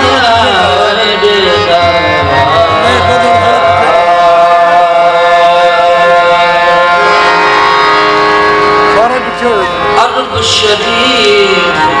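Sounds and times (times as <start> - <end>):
singer holding a long note: 0.0 - 8.2
harmonium chords: 0.0 - 12.0.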